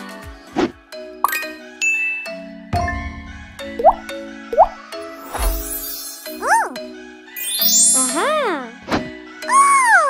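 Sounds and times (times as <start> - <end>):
bright chime dings: 1.2 - 3.1.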